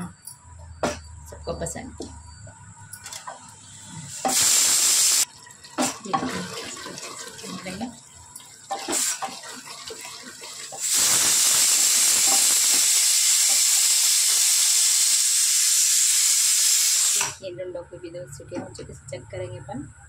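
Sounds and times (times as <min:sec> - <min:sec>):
loud steady hiss: 0:04.1 - 0:05.3, 0:10.8 - 0:17.4.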